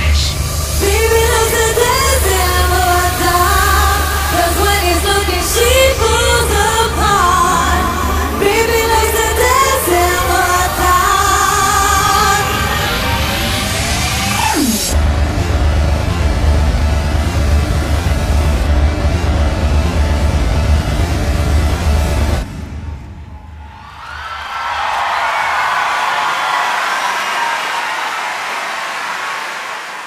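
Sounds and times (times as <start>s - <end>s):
arena crowd cheering and screaming: 0.0s - 17.5s, 22.8s - 30.0s.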